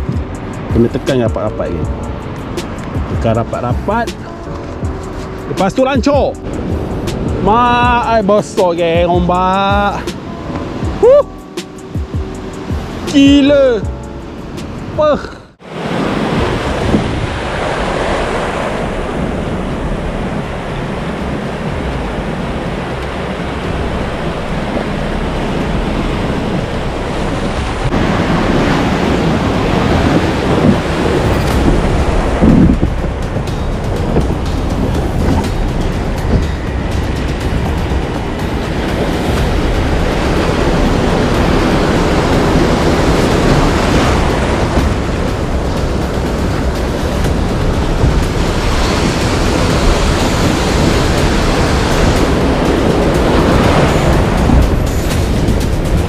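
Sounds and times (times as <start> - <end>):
wind on microphone: 0.0 - 56.0
water splashing against hull: 14.4 - 56.0
surf breaking: 14.6 - 56.0
whitewater washing around a kayak: 14.9 - 56.0.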